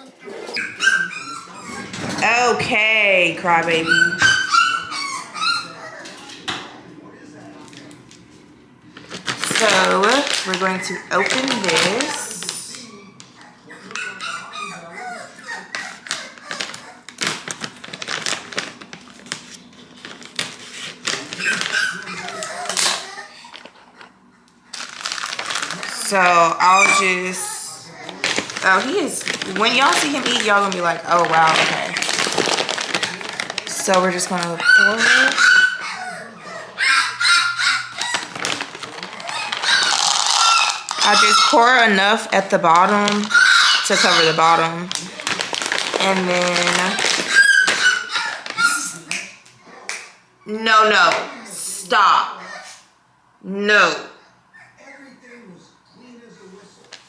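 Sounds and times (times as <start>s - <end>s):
puppy whining: 0.0s - 7.6s, 9.0s - 50.6s, 52.2s - 53.0s, 54.1s - 56.9s
plastic bag crinkling: 8.9s - 12.9s, 15.4s - 23.8s, 24.7s - 49.3s
person speaking: 25.8s - 32.4s, 45.9s - 47.2s.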